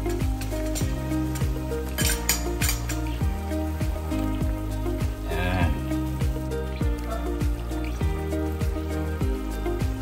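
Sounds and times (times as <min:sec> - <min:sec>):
background music with steady beat: 0:00.0 - 0:10.0
kitchenware clinking: 0:00.3 - 0:03.2.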